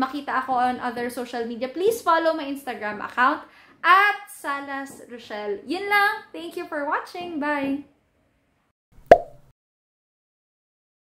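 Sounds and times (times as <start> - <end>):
click-like pop effect: 9.0 - 9.5.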